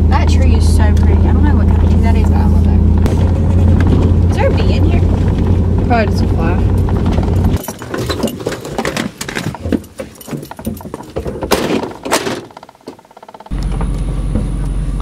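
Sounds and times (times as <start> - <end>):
low steady rumble: 0.0 - 7.7
truck engine rumbling: 0.0 - 15.0
clicks and metallic jingles: 6.6 - 13.5.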